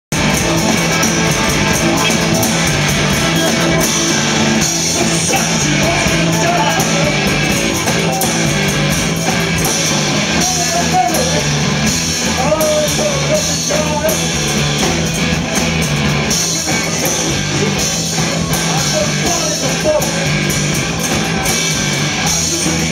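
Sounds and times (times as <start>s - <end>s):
bass guitar: 0.1s - 22.9s
drum kit with cymbals: 0.1s - 22.9s
electric guitar: 0.1s - 22.9s
person singing: 0.2s - 14.4s, 16.3s - 22.9s.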